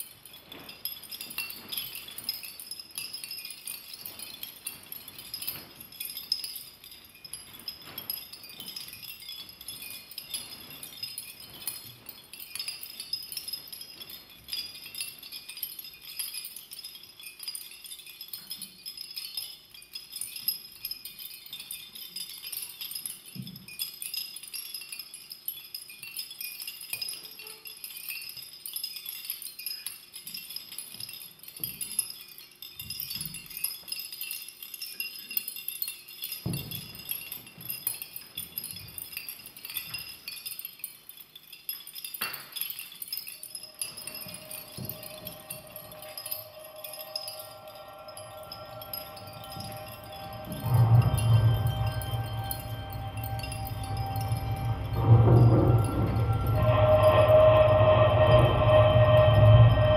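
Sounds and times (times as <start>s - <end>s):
chimes tinkling: 0.0s - 59.9s.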